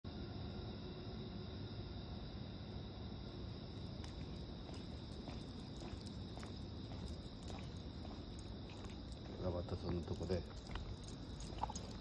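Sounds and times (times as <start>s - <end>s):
insects trilling: 0.1s - 12.0s
low background rumble: 3.1s - 12.0s.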